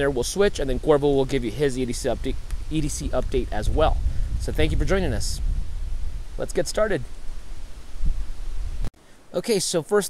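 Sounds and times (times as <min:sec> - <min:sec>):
wind buffeting microphone: 0:00.0 - 0:08.9.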